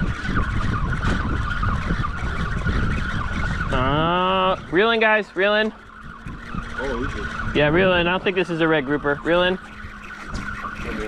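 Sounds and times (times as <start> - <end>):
boat noise rumbling: 0.0 - 11.0
high whine: 0.0 - 11.0
wind on microphone: 0.0 - 11.0.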